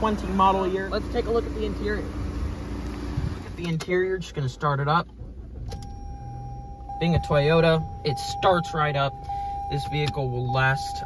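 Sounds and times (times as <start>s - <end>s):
car engine starting and idling: 0.0s - 11.0s
steady high tone: 5.8s - 11.0s.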